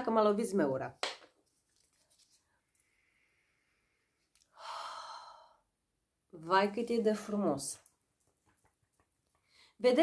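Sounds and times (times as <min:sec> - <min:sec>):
woman sighing breathily: 0:04.5 - 0:05.7.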